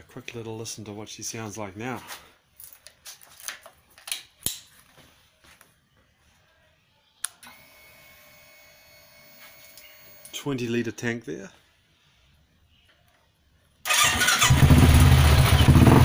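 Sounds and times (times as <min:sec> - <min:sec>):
faint electrical whine: 0:02.2 - 0:13.8.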